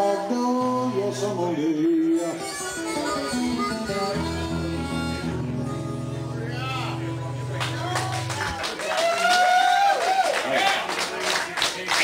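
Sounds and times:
harmonica notes: 0:00.0 - 0:08.2
acoustic blues guitar picking: 0:00.0 - 0:08.6.

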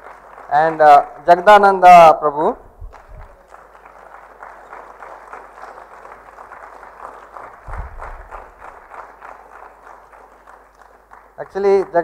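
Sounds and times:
audience applauding: 0:00.0 - 0:01.5, 0:02.9 - 0:12.0.

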